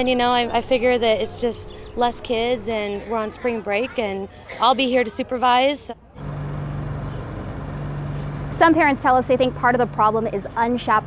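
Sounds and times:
engine running: 0:05.1 - 0:11.0.

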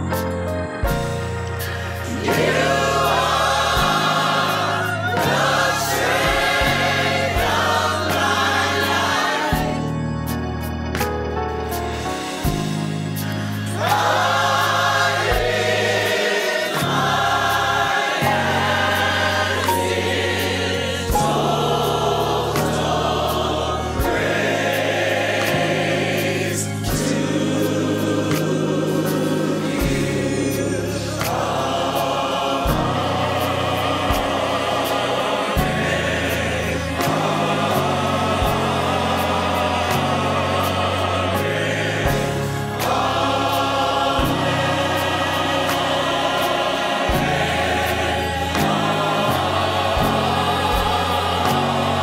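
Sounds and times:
gospel choir singing: 0:00.0 - 0:52.0.

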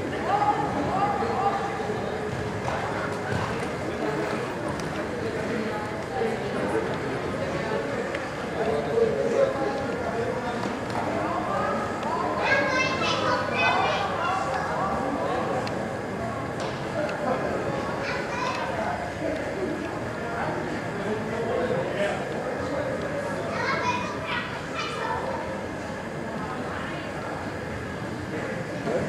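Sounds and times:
people chattering: 0:00.0 - 0:29.0
children calling out: 0:12.4 - 0:14.7, 0:23.4 - 0:25.5.

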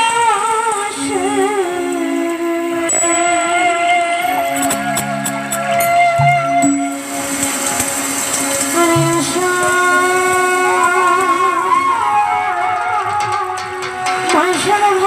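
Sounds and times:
woman singing: 0:00.0 - 0:05.0, 0:08.7 - 0:15.0
held keyboard notes: 0:00.0 - 0:15.0.

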